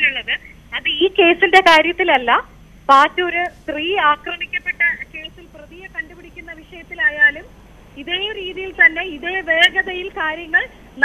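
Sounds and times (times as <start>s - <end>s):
woman speaking over telephone: 0.0s - 10.7s.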